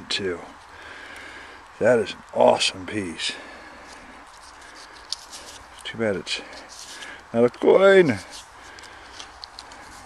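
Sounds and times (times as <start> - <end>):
faint outdoor background noise: 0.0 - 10.0
man's voice: 7.3 - 8.3.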